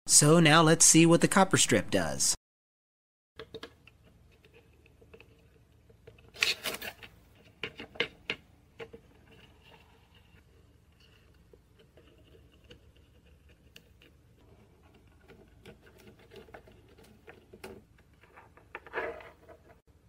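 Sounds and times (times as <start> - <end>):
rubbing and scraping: 4.2 - 19.9.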